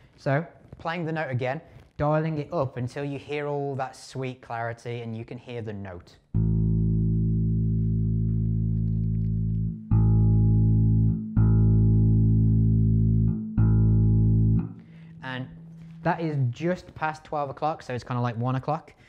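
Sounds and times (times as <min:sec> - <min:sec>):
bass guitar string plucked: 0:06.3 - 0:16.8.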